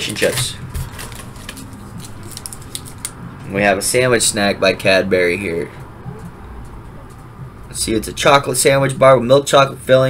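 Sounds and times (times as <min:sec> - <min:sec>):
snack wrappers rustling: 0:00.0 - 0:03.2.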